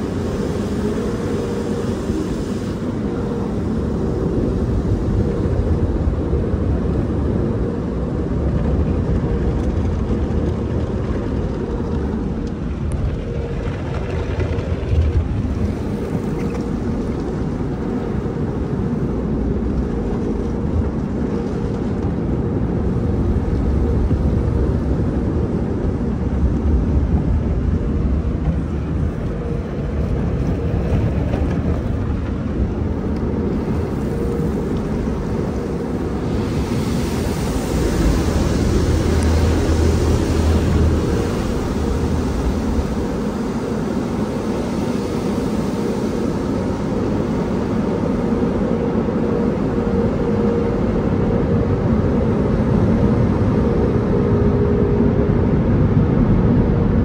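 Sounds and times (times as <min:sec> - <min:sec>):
low rumble of wash machinery: 0:00.0 - 0:57.0.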